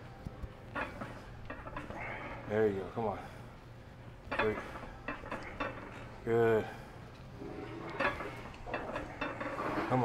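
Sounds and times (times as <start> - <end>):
metallic clinks of weight machine: 4.3 - 6.1, 7.9 - 10.0.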